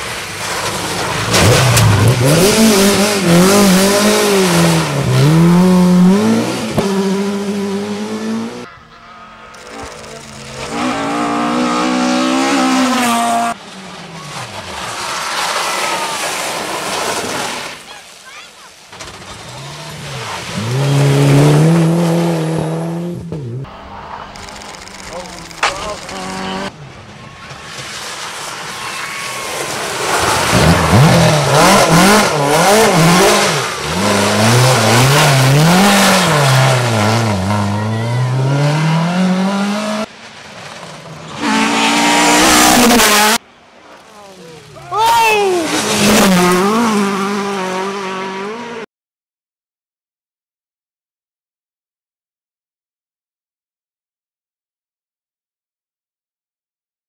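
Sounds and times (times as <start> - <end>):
rally car engines revving: 0.0 - 17.8, 18.9 - 48.9.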